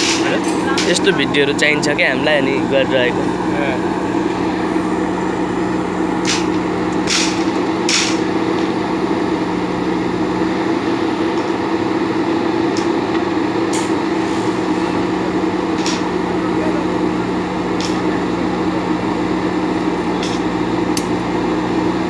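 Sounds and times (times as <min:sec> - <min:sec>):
diesel engine running: 0:00.0 - 0:22.0.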